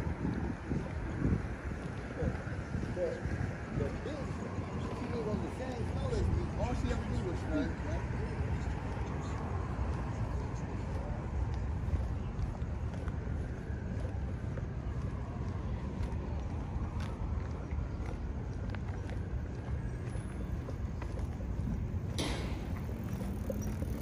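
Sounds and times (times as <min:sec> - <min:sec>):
distant city traffic rumble: 0:00.0 - 0:24.0.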